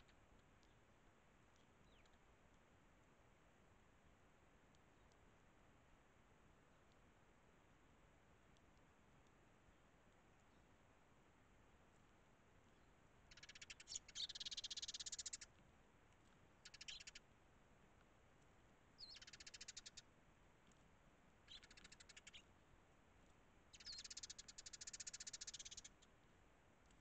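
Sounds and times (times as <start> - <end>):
sparrows chirping: 1.5 - 2.2, 12.7 - 15.6, 16.6 - 17.3, 19.0 - 20.1, 21.4 - 22.5, 23.7 - 26.2.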